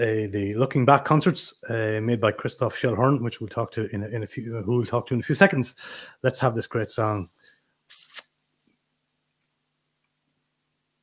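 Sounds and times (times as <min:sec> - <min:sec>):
short hiss: 0:07.9 - 0:08.4.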